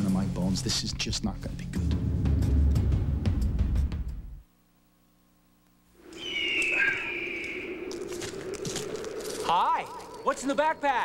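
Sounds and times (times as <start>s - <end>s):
bird's long high cry: 6.0s - 8.2s.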